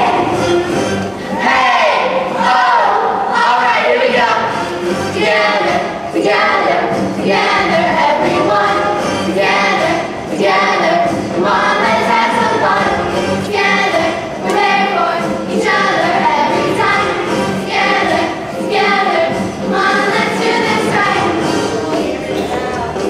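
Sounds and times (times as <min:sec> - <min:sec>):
backing music: 0:00.0 - 0:23.0
children singing in chorus: 0:05.1 - 0:23.0.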